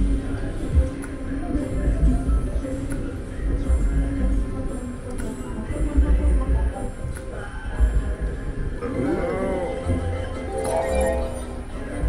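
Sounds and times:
slot machine win jingle: 0:10.0 - 0:11.9.

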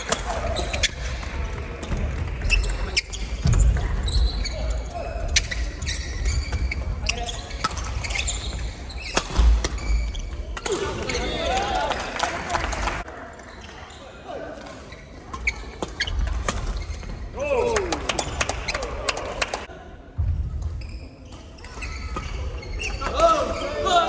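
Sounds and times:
sneakers squeaking on wooden floor: 0:00.0 - 0:11.4, 0:13.5 - 0:17.3, 0:20.5 - 0:24.0.

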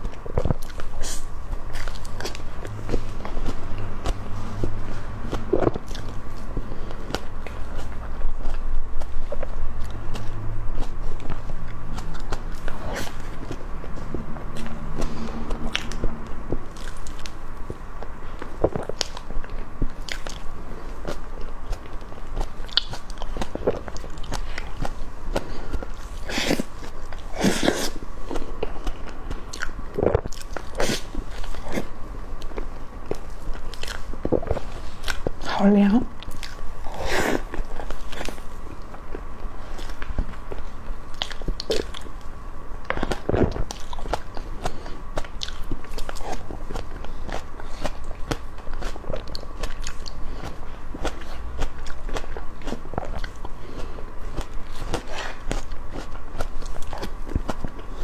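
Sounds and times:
close chewing with mouth smacks: 0:00.0 - 0:58.0
faint steady hum: 0:00.0 - 0:58.0.

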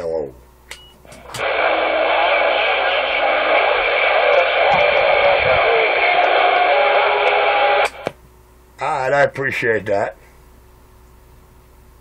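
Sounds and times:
radio static hiss: 0:01.1 - 0:08.2
tinny voice over radio speaker: 0:01.2 - 0:08.0.

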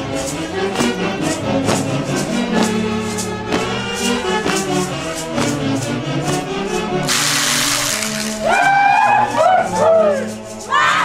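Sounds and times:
band music: 0:02.6 - 0:08.9
crowd shouting: 0:08.4 - 0:11.0.

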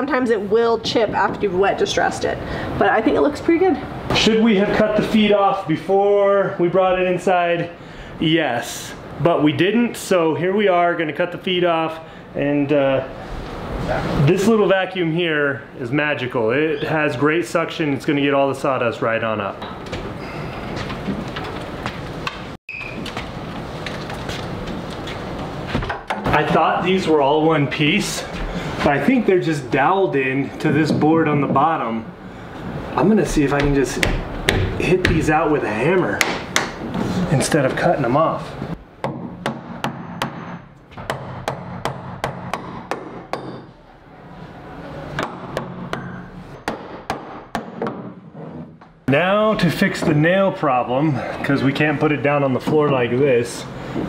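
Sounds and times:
hammer knocking on wood: 0:33.6 - 0:35.4, 0:39.0 - 0:43.7, 0:45.2 - 0:48.9.

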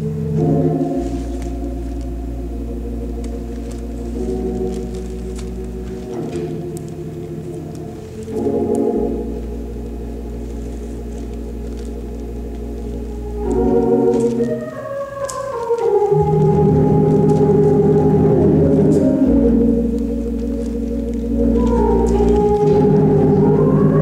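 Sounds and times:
organ playing chords: 0:00.0 - 0:24.0.

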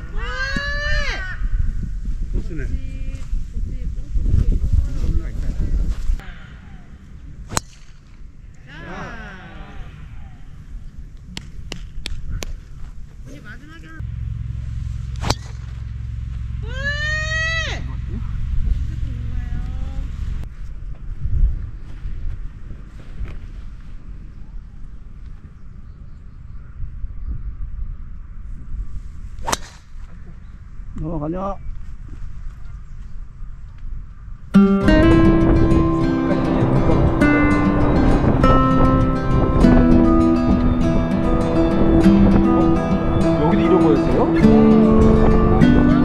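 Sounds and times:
wind rumble on microphone: 0:00.0 - 0:08.6, 0:09.2 - 0:46.0
voices: 0:08.5 - 0:10.6, 0:35.0 - 0:46.0
steady low rumble: 0:13.9 - 0:22.9, 0:33.3 - 0:46.0
golf ball struck off tee: 0:15.1 - 0:16.0, 0:29.4 - 0:30.0.

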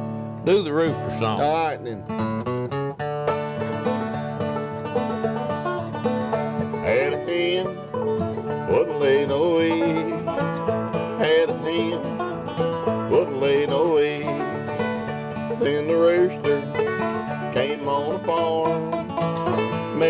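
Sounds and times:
acoustic guitar: 0:00.0 - 0:20.0
banjo: 0:00.0 - 0:20.0
man singing: 0:06.8 - 0:07.9, 0:08.6 - 0:10.4, 0:11.1 - 0:12.2, 0:13.0 - 0:14.8, 0:15.4 - 0:20.0.

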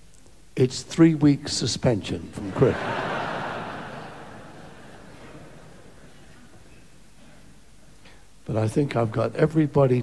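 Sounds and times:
audience laughing: 0:02.4 - 0:06.6.

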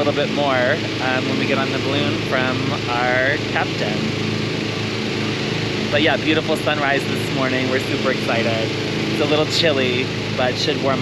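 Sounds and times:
inflator fan engine running: 0:00.0 - 0:11.0.

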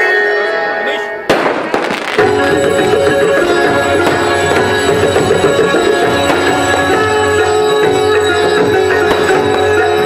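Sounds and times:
fireworks crackling pops: 0:01.3 - 0:02.3
devotional music: 0:01.9 - 0:10.0.

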